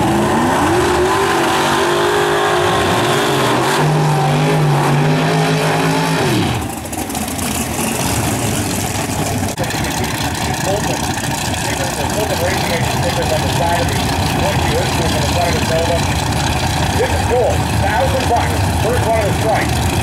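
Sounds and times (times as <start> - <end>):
car engine revving high: 0.0 - 6.7
engine running rough and low: 0.0 - 20.0.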